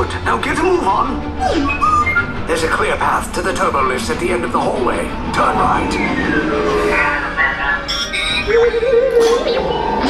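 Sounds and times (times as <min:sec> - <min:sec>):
low rumble: 0:02.2 - 0:09.1
falling electronic whine: 0:05.1 - 0:08.5.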